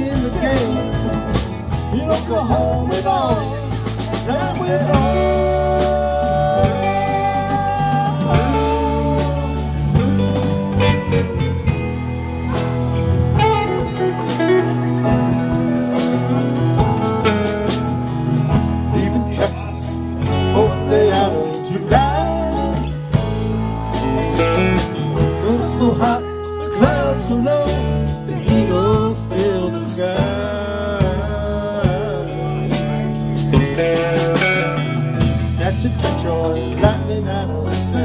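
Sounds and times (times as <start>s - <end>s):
drums: 0.0s - 38.0s
electric bass: 0.0s - 38.0s
keyboard: 0.0s - 38.0s
saxophone: 5.0s - 18.3s, 21.0s - 28.5s.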